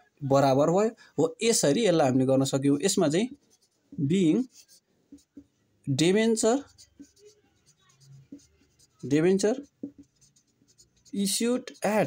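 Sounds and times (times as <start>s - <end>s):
person speaking: 0.2s - 12.0s
marker pen writing on whiteboard: 1.5s - 12.0s.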